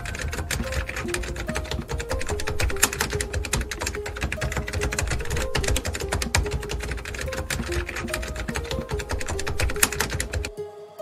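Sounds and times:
rapid keyboard typing: 0:00.0 - 0:10.5
electronic music: 0:00.0 - 0:11.0.

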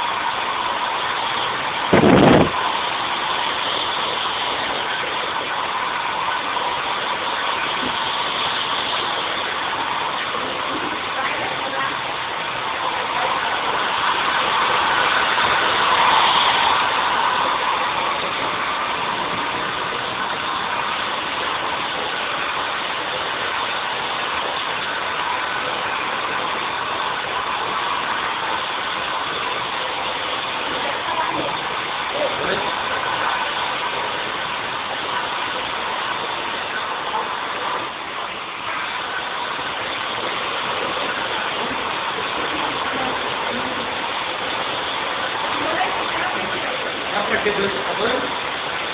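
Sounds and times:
hair dryer blowing: 0:00.6 - 0:06.3, 0:07.1 - 0:38.4, 0:39.1 - 0:48.9.

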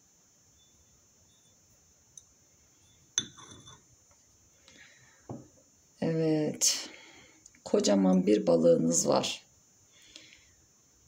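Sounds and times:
saucer clinking against cup: 0:03.2 - 0:03.8.

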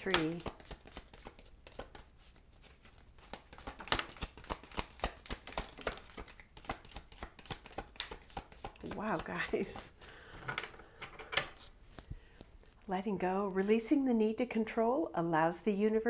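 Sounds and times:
cards shuffled by hand: 0:00.0 - 0:09.9.

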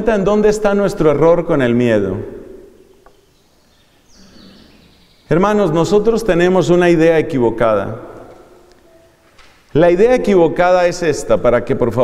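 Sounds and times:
room background noise: 0:00.0 - 0:12.0.

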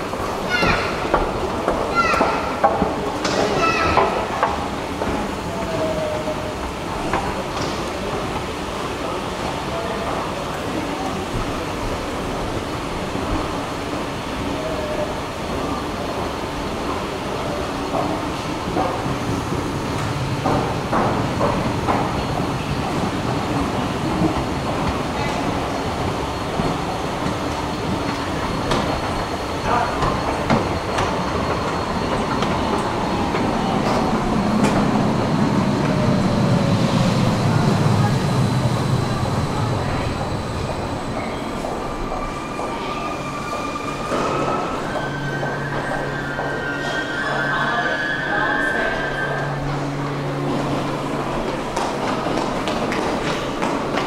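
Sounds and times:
low train rumble: 0:00.0 - 0:54.0
station and escalator hum: 0:00.0 - 0:54.0
train whine: 0:00.0 - 0:54.0.

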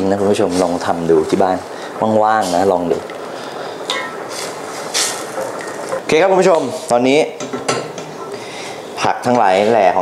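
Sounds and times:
spoon stirring a pan: 0:03.8 - 0:06.0.

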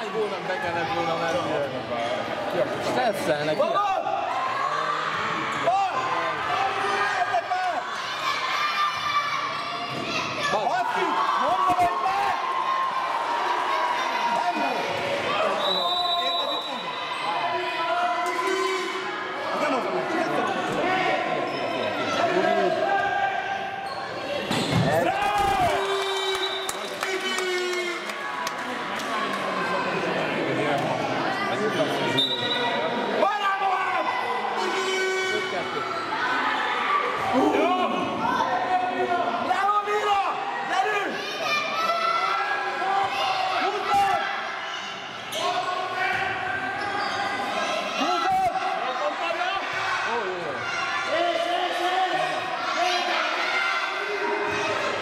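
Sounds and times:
children shouting and cheering: 0:40.8 - 0:45.1.

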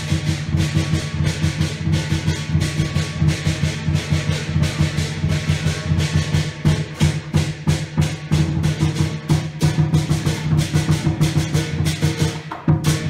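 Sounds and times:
cymbals clashing: 0:00.0 - 0:13.0
large drum beating fast: 0:00.0 - 0:13.0.

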